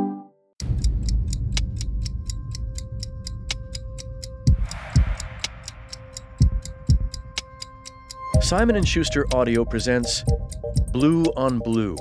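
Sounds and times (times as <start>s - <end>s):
deep bass hits: 0.6s - 7.3s
clock-like ticking: 0.6s - 12.0s.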